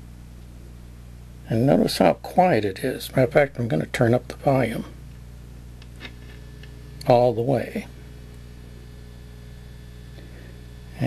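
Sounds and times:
radio speaker low hum: 0:01.4 - 0:11.0
faint radio station: 0:01.5 - 0:11.0.

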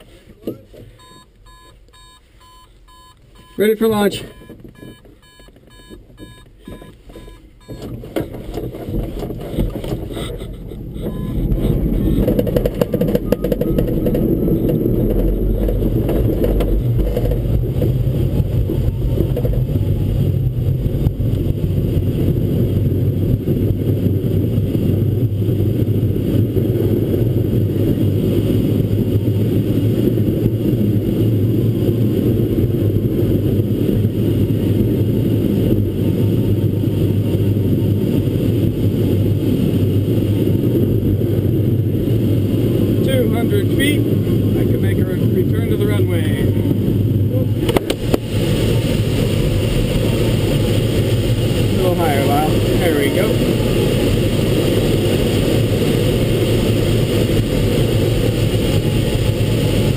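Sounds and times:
deep rumble: 0:00.0 - 0:59.9
glider takeoff airflow rushing: 0:00.0 - 0:59.9
electronic beeps: 0:01.0 - 0:08.0, 0:10.9 - 0:14.0.

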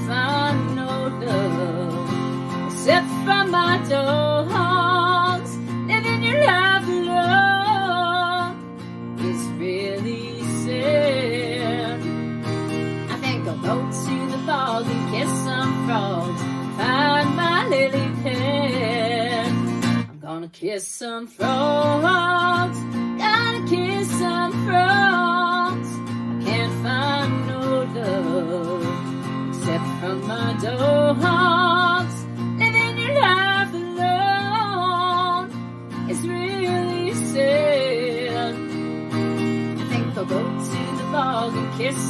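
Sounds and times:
acoustic guitar strumming: 0:00.0 - 0:20.1, 0:21.4 - 0:42.0
woman singing with vibrato: 0:00.0 - 0:42.0.

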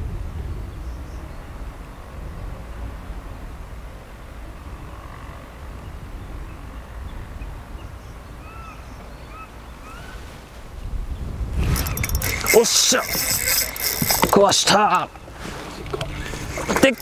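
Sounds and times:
wind rumbling on microphone: 0:00.0 - 0:17.0
faint bird chirps: 0:04.8 - 0:10.3.

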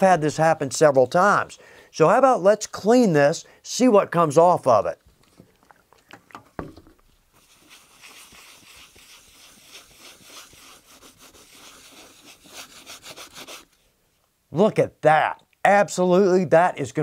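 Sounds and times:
paper towel scrubbing a board: 0:07.3 - 0:13.8.

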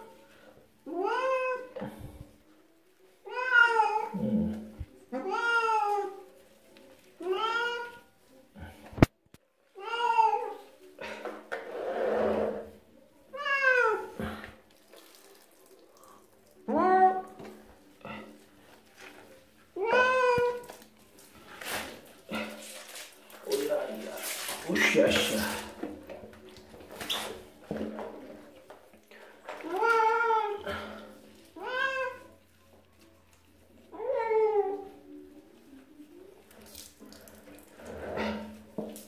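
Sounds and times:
cat meowing: 0:00.9 - 0:01.7, 0:03.3 - 0:04.2, 0:05.2 - 0:06.2, 0:07.2 - 0:08.0, 0:13.3 - 0:14.1, 0:16.6 - 0:17.3, 0:19.8 - 0:20.6, 0:31.6 - 0:32.4
water splashing and sloshing: 0:14.1 - 0:19.2, 0:19.8 - 0:32.4, 0:36.2 - 0:39.0.

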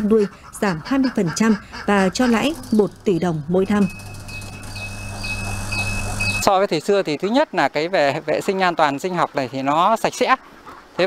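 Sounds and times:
incubator fan hum: 0:01.3 - 0:06.5
faint high chirp: 0:03.6 - 0:06.5.

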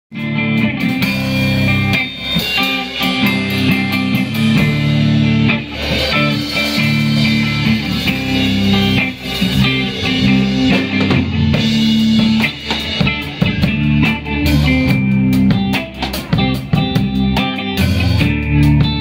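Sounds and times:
bass guitar: 0:00.1 - 0:19.0
drum kit: 0:00.1 - 0:19.0
electric guitar: 0:00.1 - 0:19.0.

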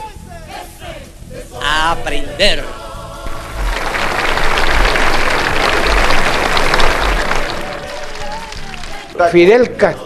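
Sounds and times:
background music with low beat: 0:00.0 - 0:10.0
crowd applauding: 0:03.2 - 0:09.5.

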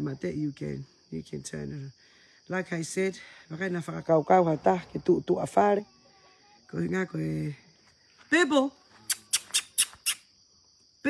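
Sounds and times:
sharp chirping clicks: 0:09.0 - 0:10.3.

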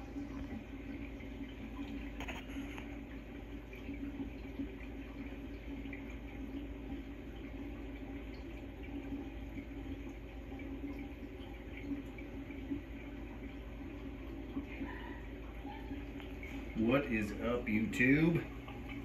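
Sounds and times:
water trickling and splashing: 0:00.0 - 0:19.0.

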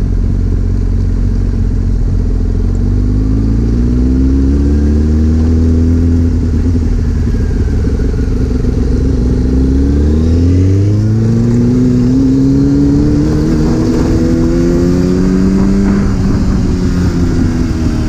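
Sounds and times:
motorcycle engine accelerating: 0:00.0 - 0:18.0.

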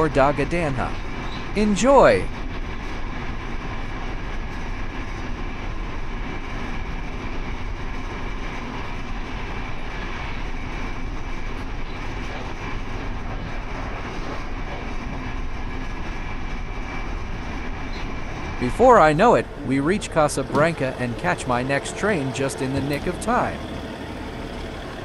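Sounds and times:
train wheels on rail: 0:00.0 - 0:25.0
faint high whine: 0:09.6 - 0:25.0.

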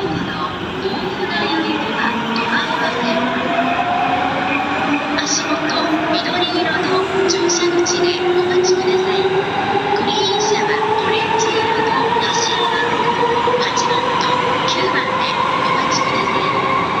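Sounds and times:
train cars rumbling on rails: 0:00.0 - 0:17.0.

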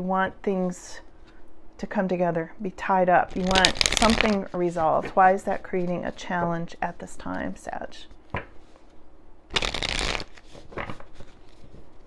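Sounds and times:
cards shuffling: 0:03.3 - 0:05.2, 0:09.5 - 0:11.9.

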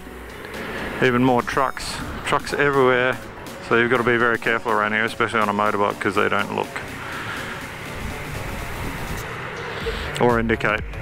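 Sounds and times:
wind rushing on microphone: 0:07.8 - 0:09.2.

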